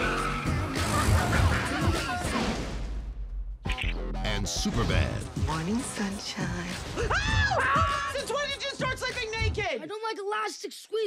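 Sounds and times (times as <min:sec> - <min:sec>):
car tyres skidding: 0:00.0 - 0:02.7
trailer music: 0:00.0 - 0:09.7.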